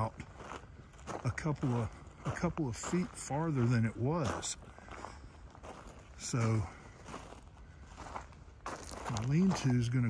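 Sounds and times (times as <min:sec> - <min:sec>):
footsteps on dirt and pine needles: 0:00.0 - 0:10.0.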